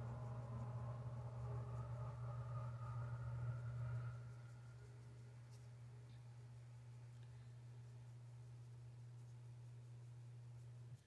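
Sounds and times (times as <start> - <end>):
higher steady tones: 0.0 - 7.8
steady low hum: 0.0 - 11.0.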